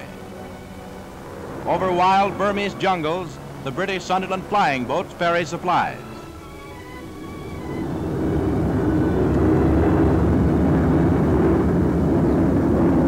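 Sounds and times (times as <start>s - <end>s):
background music: 0.0s - 13.0s
propeller aircraft engines droning: 0.0s - 13.0s.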